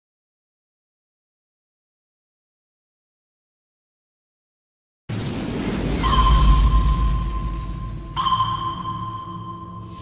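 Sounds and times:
high ringing ping: 0:06.0 - 0:10.0.

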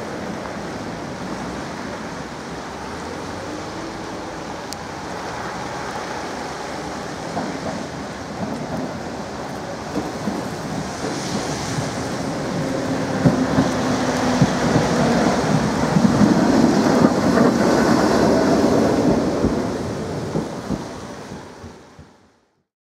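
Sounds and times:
tram wheels rumbling on rails: 0:00.0 - 0:22.5.

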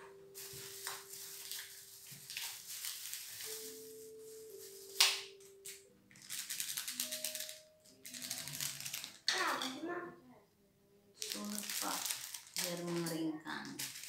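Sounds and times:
plastic bag handling noise: 0:00.0 - 0:09.8, 0:11.2 - 0:14.0
soft background music: 0:00.0 - 0:14.0
rapid crackling: 0:06.1 - 0:09.7, 0:11.2 - 0:14.0.

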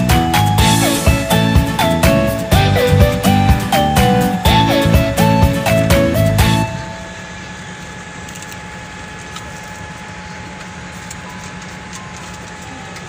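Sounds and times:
airliner cabin air hum: 0:00.0 - 0:13.0
faint high whine: 0:06.4 - 0:13.0.

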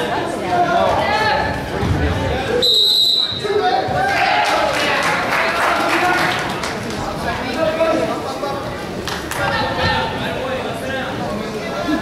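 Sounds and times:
spectators talking indistinctly: 0:00.0 - 0:12.0
referee's whistle blast: 0:02.6 - 0:03.5.

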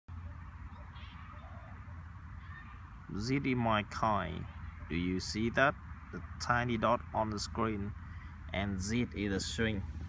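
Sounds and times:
wind on microphone: 0:08.8 - 0:10.0.

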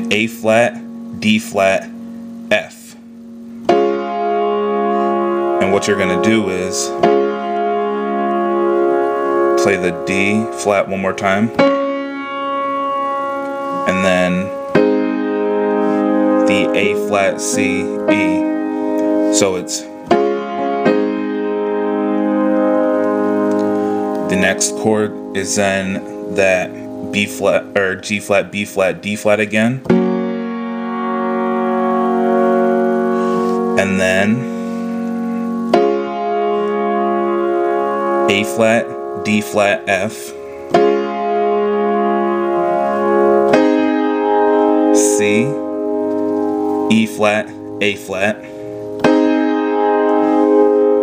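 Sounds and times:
piano note ringing: 0:00.0 - 0:51.0.

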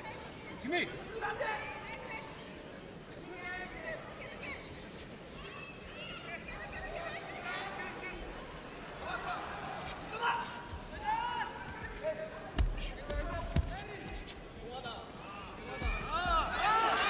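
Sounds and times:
voices shouting in a hall: 0:15.0 - 0:17.0.

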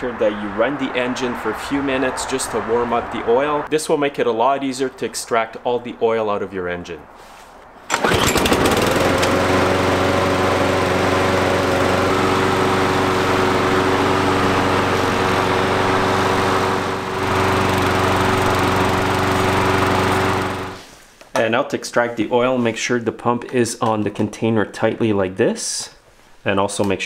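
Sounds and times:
lawn mower engine running: 0:07.9 - 0:20.9.

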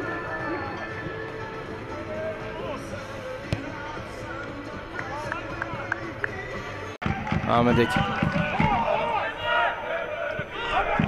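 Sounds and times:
voices shouting: 0:07.8 - 0:11.0.

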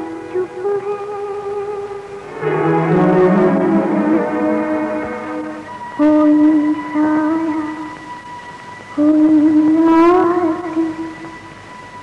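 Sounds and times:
orchestral music: 0:02.3 - 0:07.0.

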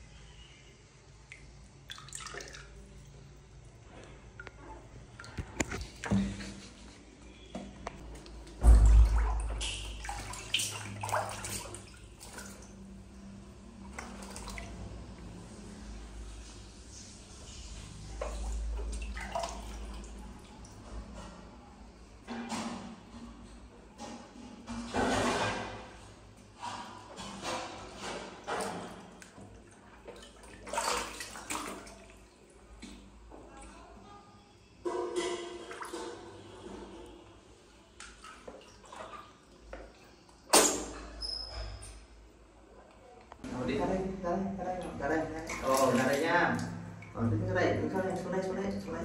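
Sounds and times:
water splashing in a bathtub: 0:00.3 - 0:49.0
water dripping: 0:01.1 - 0:03.2, 0:07.5 - 0:13.2, 0:18.2 - 0:20.9, 0:44.6 - 0:49.0.

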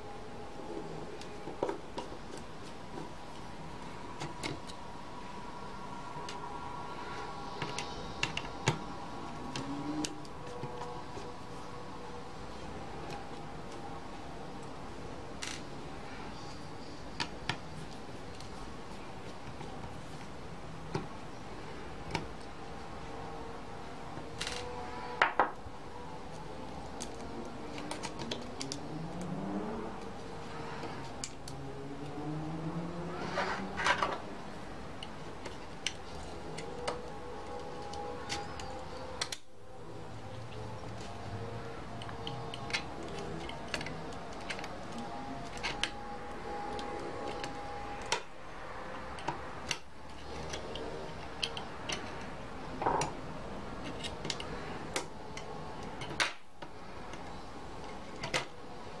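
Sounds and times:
metal tools clicking on plastic: 0:49.2 - 0:52.3.

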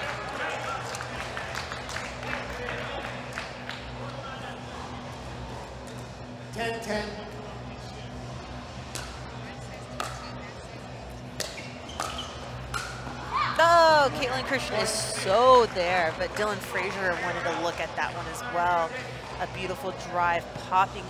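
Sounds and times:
arena background music: 0:00.0 - 0:21.0.

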